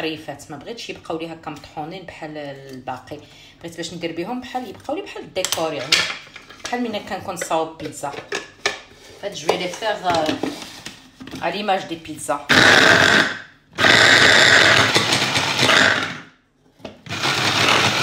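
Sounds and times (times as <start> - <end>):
electric food chopper pulsing: 12.5 - 16.2, 17.0 - 18.0.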